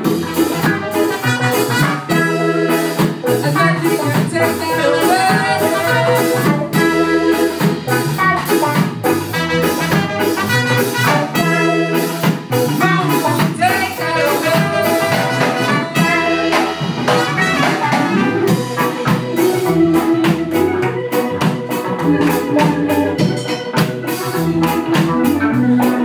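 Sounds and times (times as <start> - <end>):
drums steady beat: 0.0 - 26.0
electric guitars: 0.0 - 26.0
keyboard: 0.0 - 26.0
trumpet lead line: 0.0 - 26.0.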